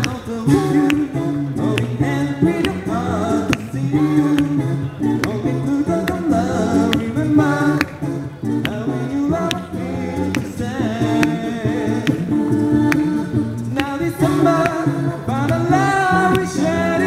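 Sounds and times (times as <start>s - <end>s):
a cappella group singing harmony: 0.0s - 17.0s
vocal percussion clicks: 0.0s - 17.0s.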